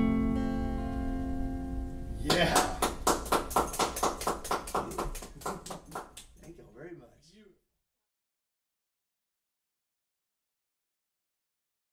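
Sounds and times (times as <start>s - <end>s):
hand-clapping: 2.2s - 6.7s.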